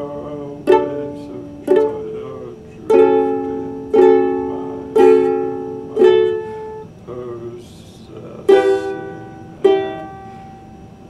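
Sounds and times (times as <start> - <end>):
ukulele chords strummed: 0.0 - 7.4, 8.2 - 10.8.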